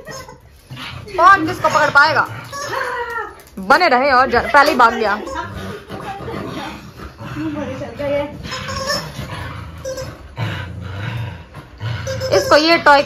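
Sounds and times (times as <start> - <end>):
dog growling in play: 0.1 - 3.0, 4.3 - 13.0.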